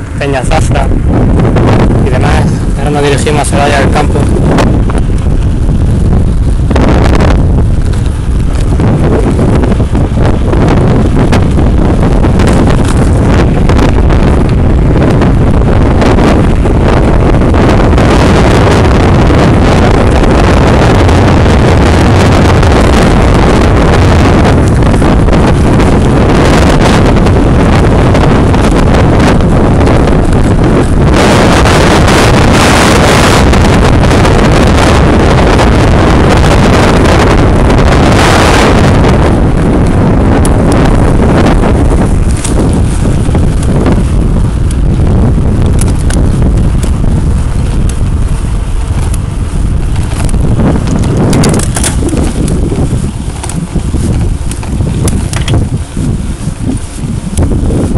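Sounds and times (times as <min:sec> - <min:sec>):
wind buffeting microphone: 0:00.0 - 0:57.9.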